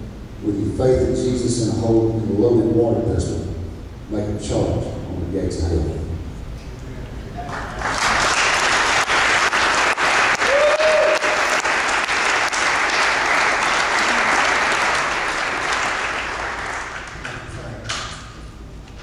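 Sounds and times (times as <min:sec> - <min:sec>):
congregation applauding: 0:07.4 - 0:17.5.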